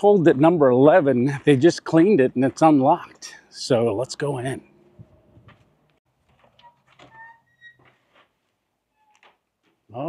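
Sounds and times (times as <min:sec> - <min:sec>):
door squeak: 0:06.5 - 0:08.2, 0:08.9 - 0:09.4.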